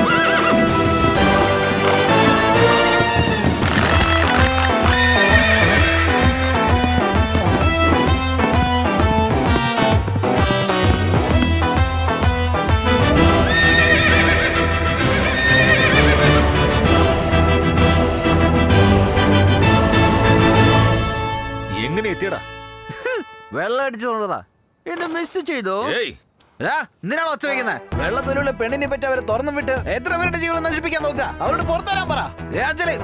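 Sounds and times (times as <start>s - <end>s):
horse whinnying: 0.0s - 10.2s, 12.9s - 16.6s
loud film background music: 0.0s - 23.0s, 27.6s - 33.0s.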